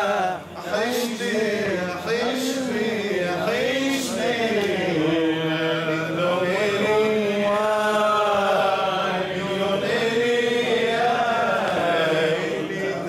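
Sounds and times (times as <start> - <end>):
man singing unaccompanied hymn: 0.0 - 13.0.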